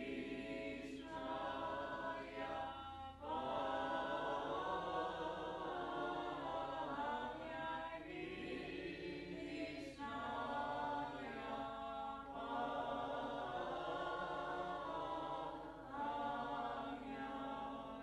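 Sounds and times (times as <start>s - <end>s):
choir singing a chant: 0.0s - 18.0s.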